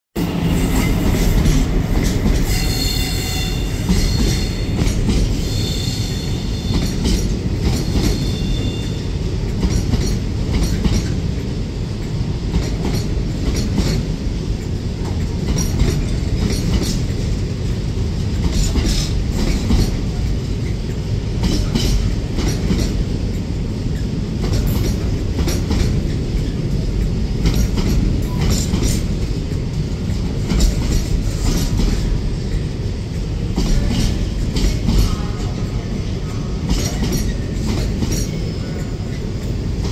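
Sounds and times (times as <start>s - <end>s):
freight train rumbling past: 0.2s - 39.9s
high-pitched wheel squeal: 2.4s - 4.8s
wheels clattering over rail joints: 6.2s - 35.8s.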